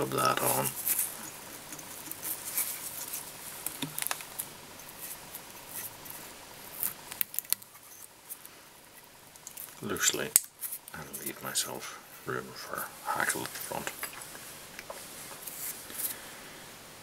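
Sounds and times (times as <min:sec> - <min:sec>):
soft rustling of fingers: 0:00.1 - 0:16.3.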